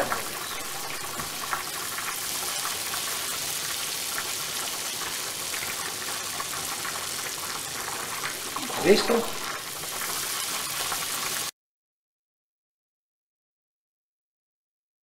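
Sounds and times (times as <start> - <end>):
food sizzling in a pan: 0.0 - 11.5.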